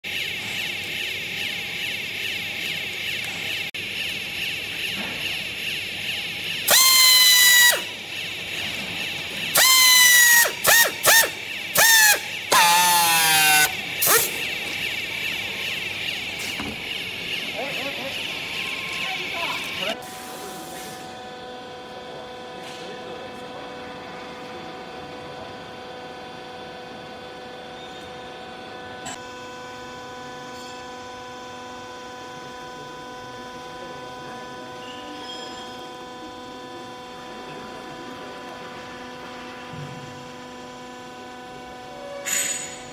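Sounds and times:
strapping tool motor whine: 0.1 - 20.0
steady machine hum: 0.1 - 42.9.

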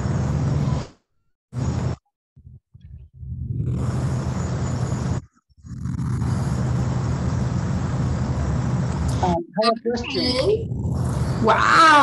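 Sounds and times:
loud steady rumbling: 1.6 - 12.0.

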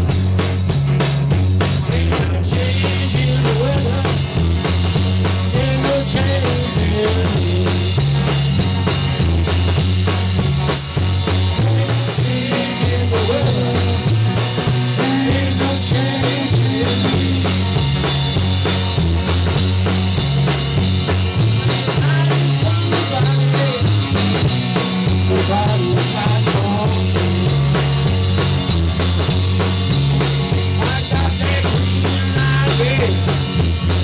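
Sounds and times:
drum kit with cymbals: 0.0 - 34.0
electric guitars: 0.0 - 34.0
low bass line: 0.0 - 34.0.

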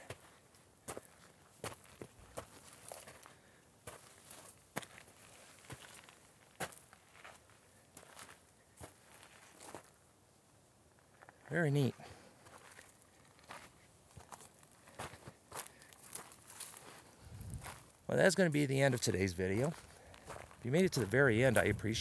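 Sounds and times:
footsteps crunching on gravel: 0.0 - 10.0, 11.2 - 22.0.

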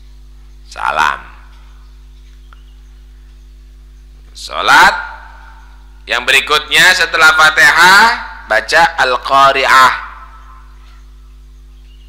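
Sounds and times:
faint recording hiss: 0.0 - 12.0
low electrical hum: 0.0 - 12.0.

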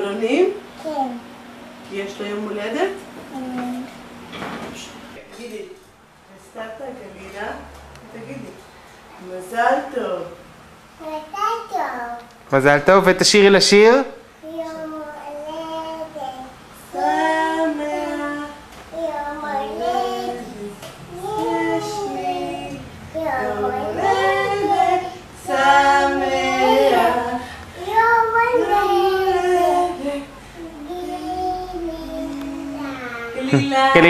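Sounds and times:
small child singing: 14.4 - 33.6.

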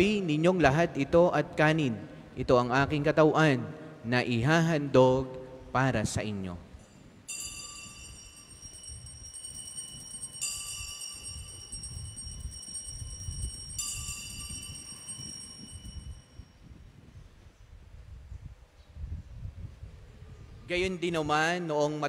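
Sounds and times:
altar bells ringing: 7.3 - 16.6.

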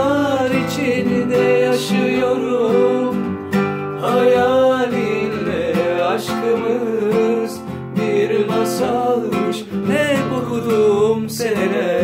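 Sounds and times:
classical acoustic guitar: 0.0 - 12.0
man singing: 0.0 - 12.0.

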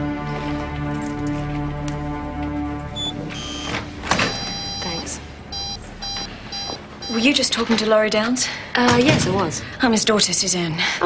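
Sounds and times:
background music: 0.0 - 7.6
short electronic beeps: 4.3 - 7.4.

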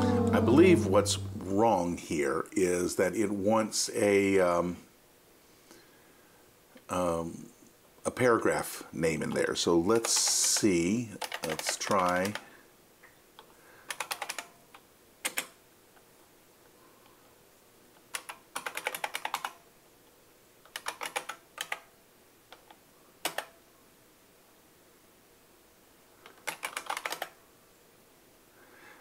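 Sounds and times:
typing on computer keyboard: 10.0 - 12.5, 13.9 - 14.6, 15.2 - 15.6, 18.0 - 19.6, 20.7 - 21.9, 22.5 - 23.6, 26.3 - 27.4.

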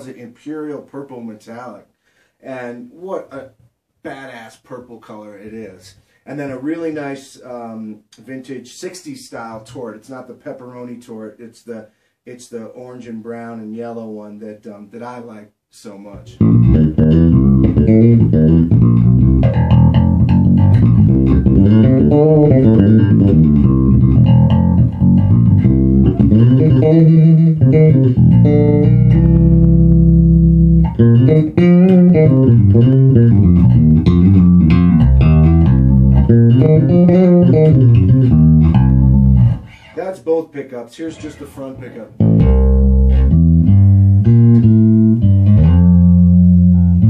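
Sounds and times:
electric bass playing quick notes: 16.4 - 39.7, 42.2 - 47.0.

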